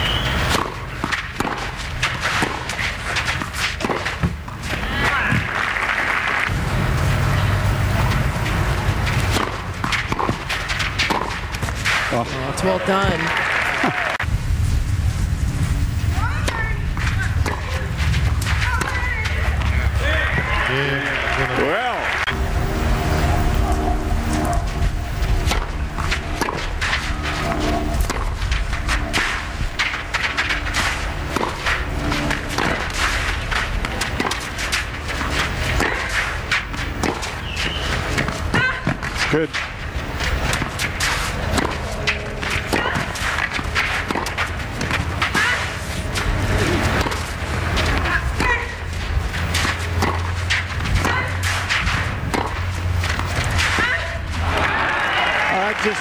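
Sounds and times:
rackets hitting tennis ball: 0.0 - 5.8, 7.3 - 13.3, 16.2 - 20.8, 24.5 - 54.7
ball bouncing: 0.2 - 5.5, 8.8 - 12.1, 16.4 - 20.5, 25.3 - 54.3
crowd noise: 4.3 - 14.3, 16.2 - 28.3, 29.2 - 56.0
low steady hum: 14.2 - 55.0.

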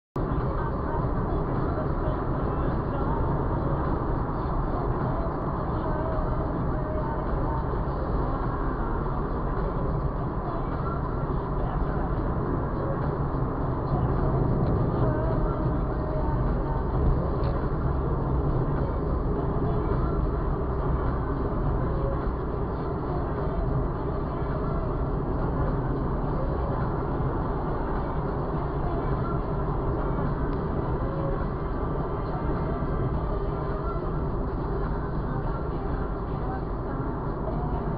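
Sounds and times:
car road and engine noise: 0.2 - 37.9.

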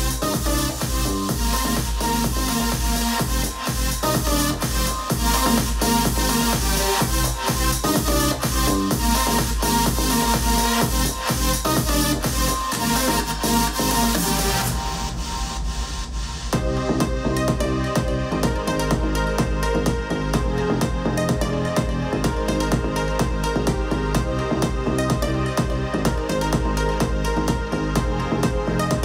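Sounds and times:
electronic dance music: 0.0 - 29.0.

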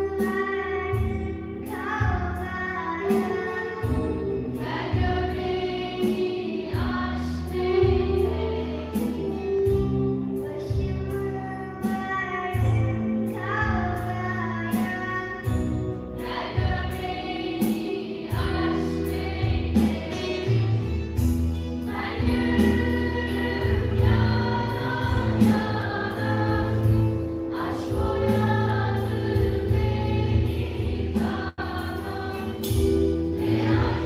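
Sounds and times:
girls choir singing: 4.0 - 9.5, 16.2 - 20.9, 21.8 - 34.0.

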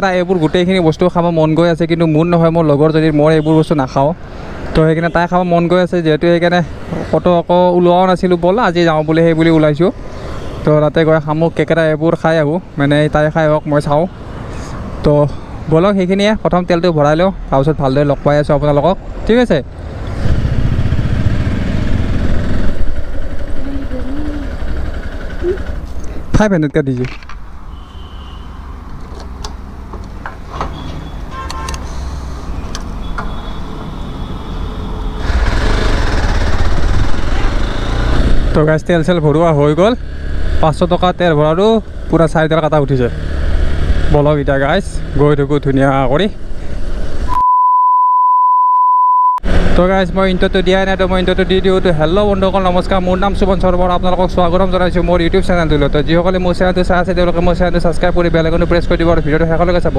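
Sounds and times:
motorcycle rumble: 19.7 - 26.4
man talking: 26.3 - 27.2, 49.8 - 59.9
steady test-tone beep: 47.3 - 49.4.

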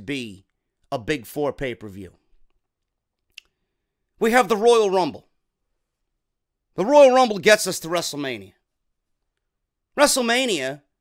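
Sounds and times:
man speaking into microphone: 0.0 - 2.3, 4.2 - 5.3, 6.7 - 8.6, 9.9 - 10.9.

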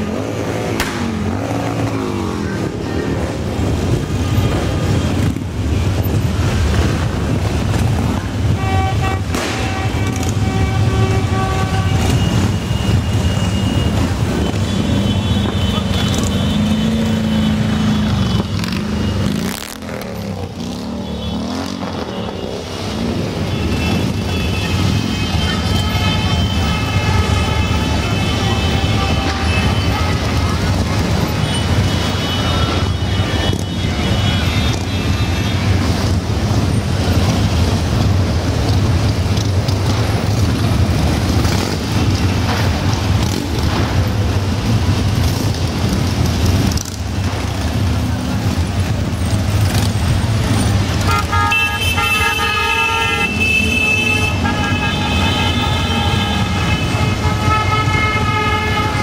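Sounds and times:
motorcycle horns: 0.0 - 37.8, 38.6 - 59.0
motorcycles engine drone: 0.0 - 59.0.

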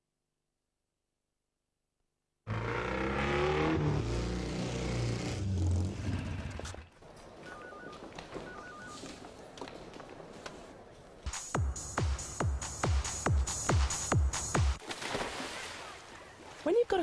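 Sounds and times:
scooter engine revving: 2.5 - 6.8
electronic telephone beeps: 7.4 - 9.0.

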